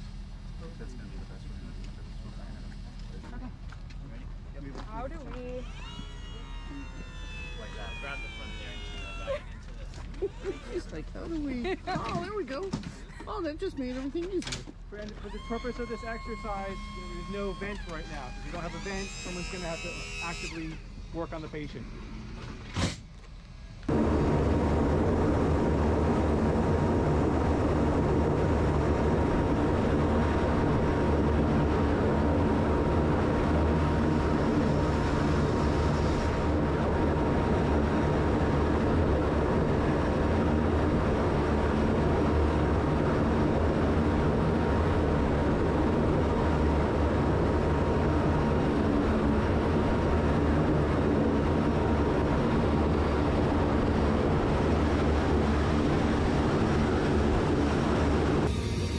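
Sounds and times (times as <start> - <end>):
turboprop engines droning: 0.0 - 58.9.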